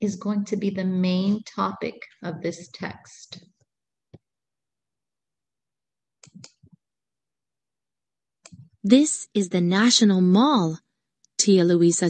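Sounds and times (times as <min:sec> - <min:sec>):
computer mouse clicks: 0:06.2 - 0:06.8, 0:08.4 - 0:08.8.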